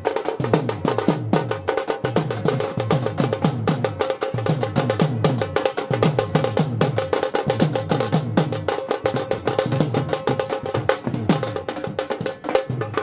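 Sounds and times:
barrel drum played fast: 0:00.0 - 0:13.0.

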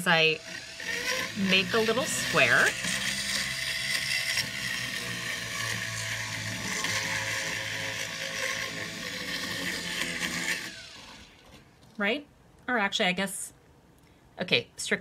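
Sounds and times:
burr scraping charcoal: 0:00.0 - 0:11.6
rotary tool motor whine: 0:00.0 - 0:11.6.

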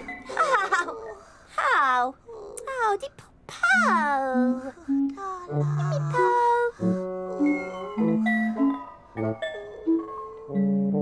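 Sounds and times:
character voices moaning: 0:03.6 - 0:06.7.

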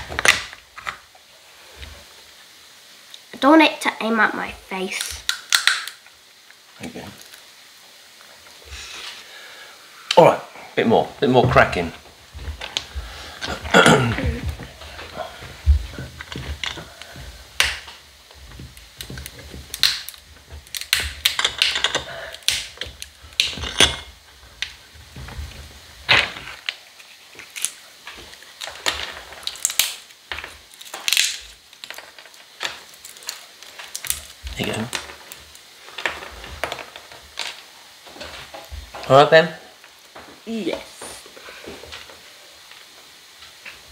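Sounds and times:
nutshells cracking in a vice: 0:05.0 - 0:06.1, 0:17.6 - 0:18.0, 0:18.8 - 0:24.7, 0:27.4 - 0:37.7.

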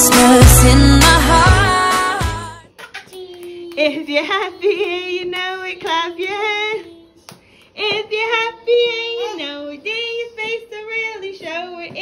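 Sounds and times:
woman and children singing: 0:03.7 - 0:07.2, 0:07.8 - 0:12.0.

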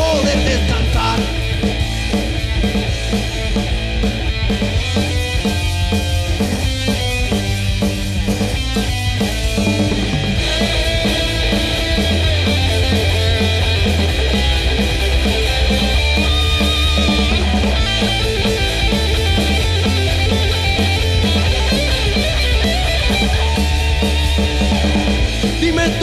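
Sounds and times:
drum kit: 0:00.0 - 0:26.0
electric guitar: 0:00.0 - 0:26.0.

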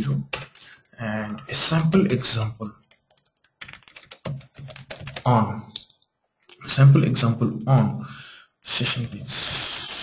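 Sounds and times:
computer keyboard typing: 0:00.1 - 0:05.3, 0:08.9 - 0:09.2.

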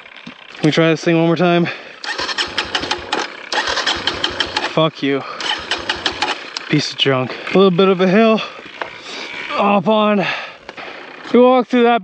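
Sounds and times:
engine cranking without firing: 0:00.0 - 0:11.4.

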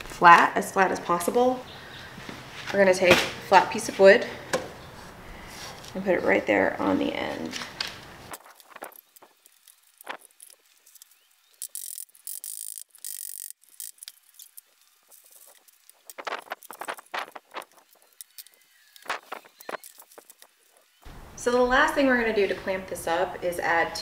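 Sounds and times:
wax paper rustling: 0:07.2 - 0:21.0.

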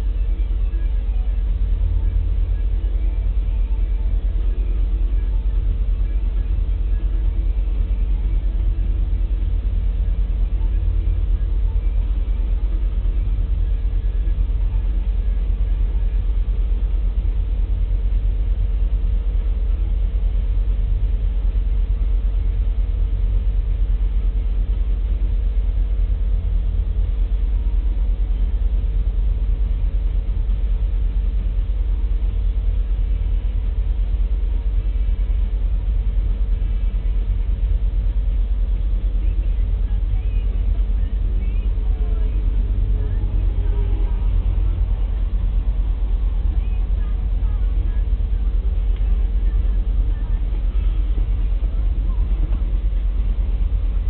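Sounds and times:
thin steady tone: 0:00.0 - 0:54.0
train cars rumbling past: 0:38.6 - 0:54.0.

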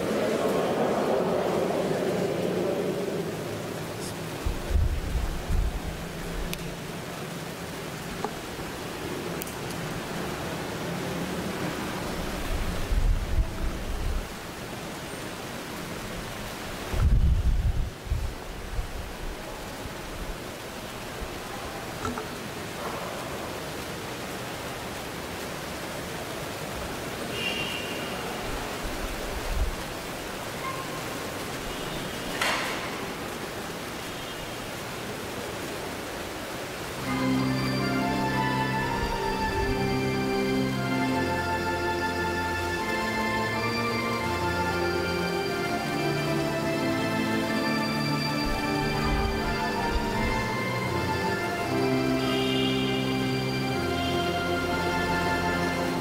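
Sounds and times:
microphone hiss: 0:00.0 - 0:56.0
music: 0:37.0 - 0:56.0.

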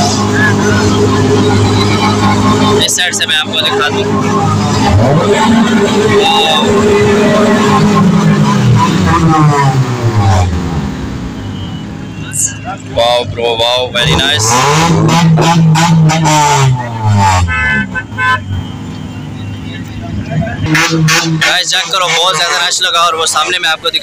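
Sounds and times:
car engine revving: 0:00.0 - 0:24.0
crowd talking: 0:00.0 - 0:24.0.

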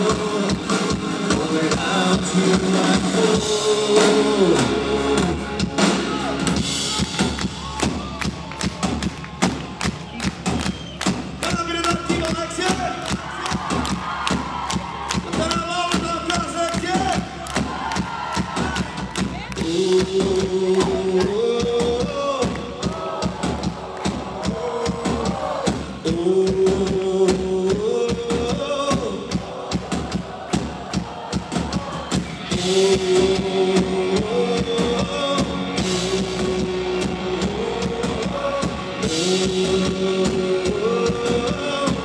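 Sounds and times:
drum beat: 0:00.0 - 0:42.0
live rock band: 0:00.0 - 0:42.0
audience singing along: 0:22.8 - 0:25.8, 0:28.8 - 0:42.0.

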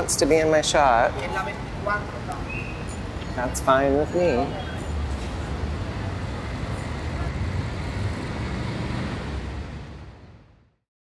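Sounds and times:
low rumble of road traffic: 0:00.0 - 0:10.8
urban noise: 0:00.0 - 0:10.8.

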